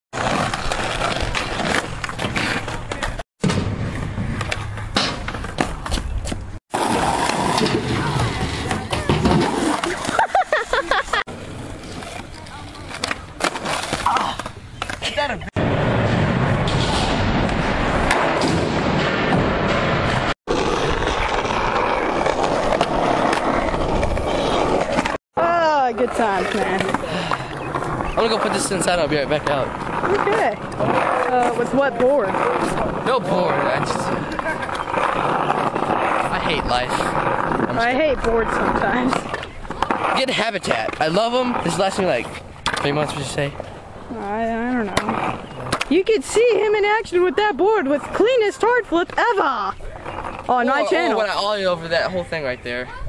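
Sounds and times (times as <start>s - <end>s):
skateboard wheels rolling on asphalt: 0.1s - 53.0s
skaters' voices: 0.2s - 3.2s, 4.3s - 15.5s, 20.1s - 53.0s
skateboards clacking and slapping: 0.2s - 15.5s, 20.0s - 43.8s, 44.8s - 52.1s.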